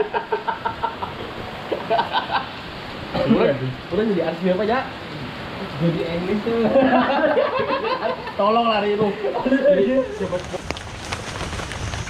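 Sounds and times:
man laughing heartily: 0:00.0 - 0:02.6, 0:06.7 - 0:08.4.

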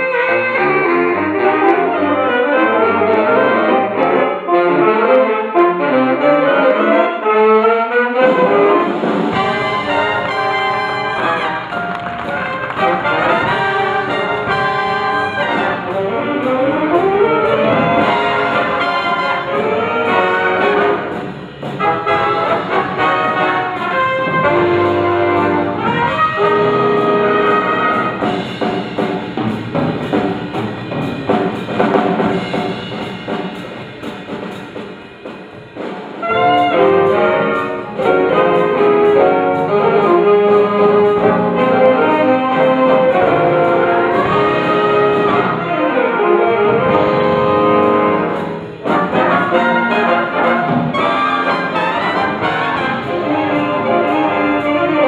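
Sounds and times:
big band jazz: 0:00.0 - 0:55.0.

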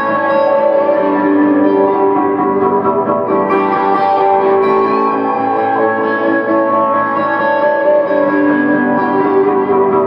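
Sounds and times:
electric guitar with delay: 0:00.0 - 0:10.0.

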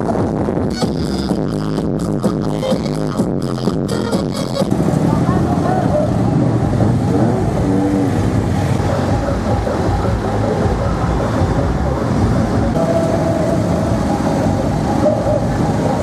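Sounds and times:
electronic dance music: 0:00.0 - 0:16.0
vehicle engines in traffic: 0:00.0 - 0:16.0
people's voices: 0:04.7 - 0:16.0.

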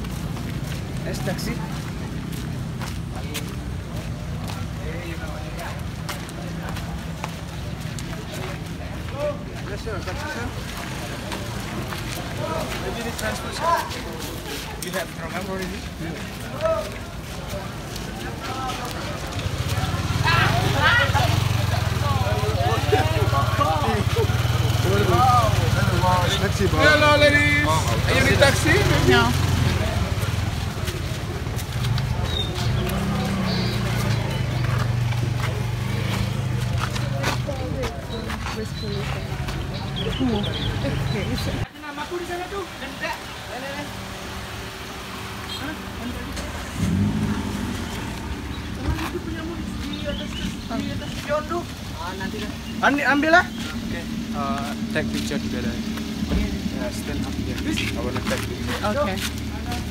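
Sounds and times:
people talking: 0:00.9 - 0:44.2, 0:45.3 - 0:59.9
scooter engine idling: 0:19.4 - 0:34.2
car engine idling: 0:40.2 - 0:59.9.

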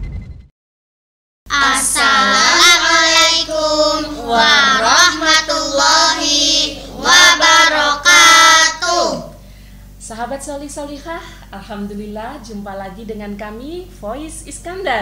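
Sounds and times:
children and women singing: 0:01.5 - 0:09.3.

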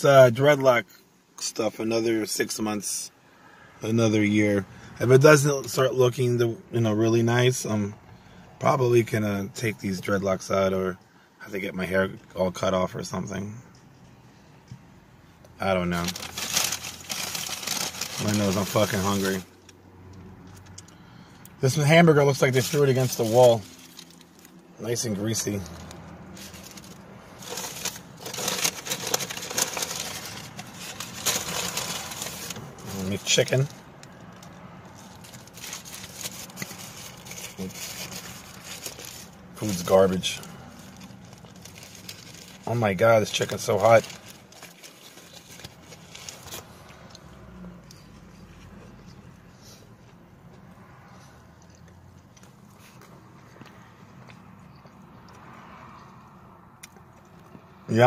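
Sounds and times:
paper wrapper crinkling: 0:15.6 - 0:19.5, 0:22.3 - 0:33.8, 0:34.9 - 0:46.8.

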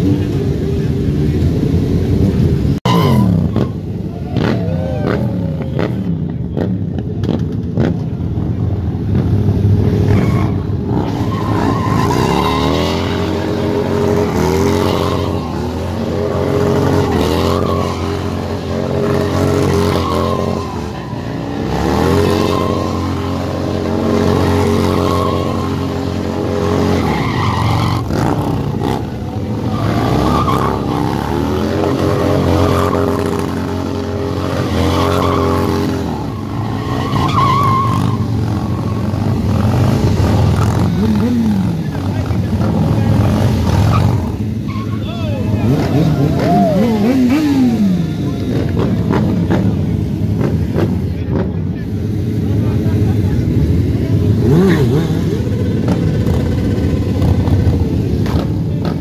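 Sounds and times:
motorcycle engine revving: 0:00.0 - 0:59.0
tyre screeching on asphalt: 0:09.9 - 0:50.3.

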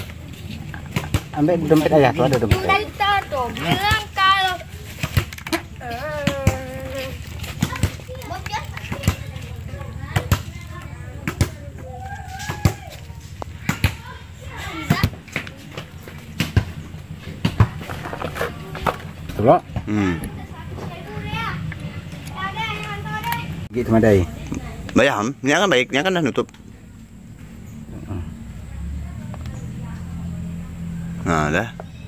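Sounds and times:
indistinct voices: 0:00.0 - 0:32.0.

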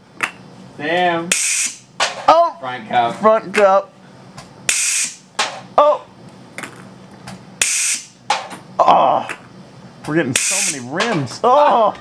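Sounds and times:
compressed air blasts: 0:01.3 - 0:02.2, 0:04.7 - 0:05.6, 0:07.6 - 0:08.5, 0:10.4 - 0:11.2.

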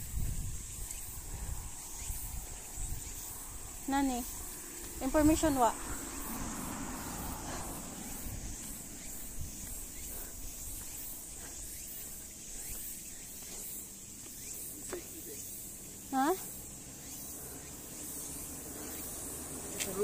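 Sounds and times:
insects chirring: 0:00.0 - 0:20.0.

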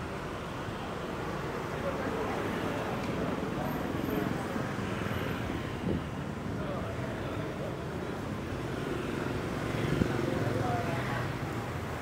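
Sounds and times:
motorbike engines rumbling: 0:00.7 - 0:12.0
faint voices: 0:01.0 - 0:12.0.

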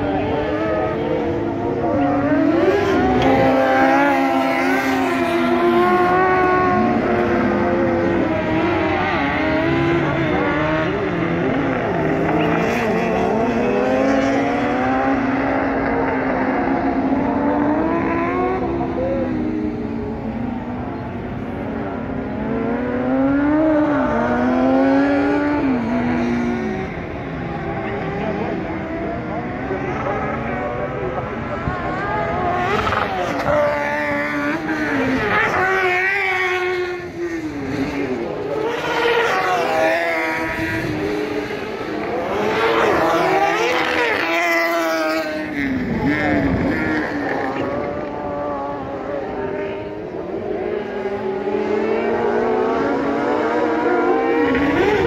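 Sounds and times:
racing buggy engines revving: 0:00.0 - 0:55.0.

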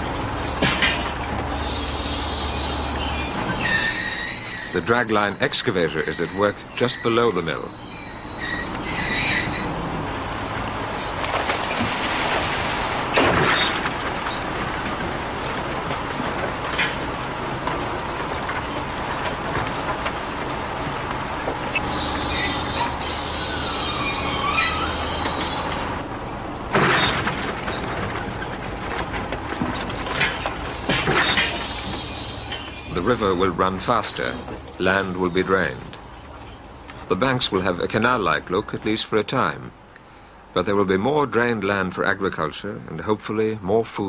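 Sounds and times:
bucket and chains clanking: 0:00.0 - 0:09.8, 0:10.8 - 0:26.1, 0:26.7 - 0:38.8
high metallic squeals: 0:00.0 - 0:09.8, 0:15.6 - 0:19.5, 0:21.7 - 0:26.1, 0:26.8 - 0:37.1
excavator engine and winches droning: 0:00.0 - 0:40.4.

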